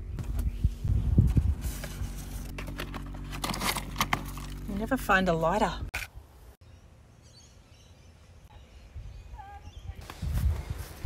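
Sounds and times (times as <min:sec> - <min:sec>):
steady low hum: 0:00.0 - 0:05.9
sharp clicks and rustles: 0:01.3 - 0:04.8.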